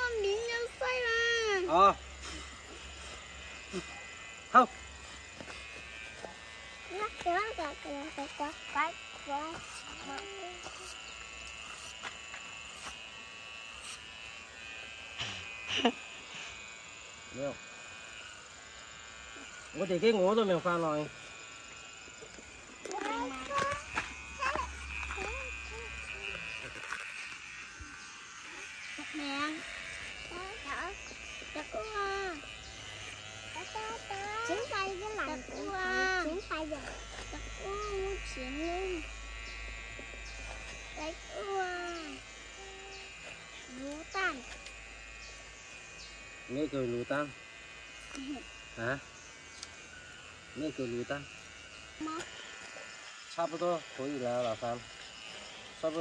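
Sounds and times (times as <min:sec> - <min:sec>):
electric hair clippers buzzing: 0:00.0 - 0:56.0.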